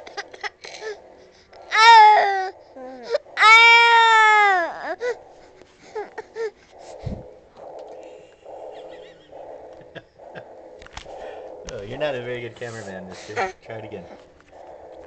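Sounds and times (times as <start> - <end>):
baby breathy sounds: 0.0 - 3.4, 4.7 - 7.4
baby crying: 1.7 - 5.2, 5.9 - 6.6.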